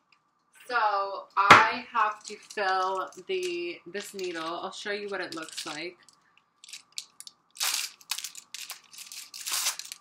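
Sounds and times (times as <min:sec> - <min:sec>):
plastic packaging crinkling: 0:01.8 - 0:10.0.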